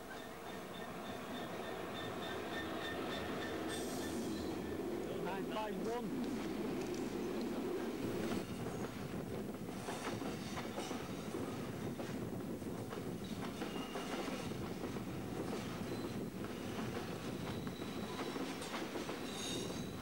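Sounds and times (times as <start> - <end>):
train wheels rumbling on rails: 0.0 - 20.0.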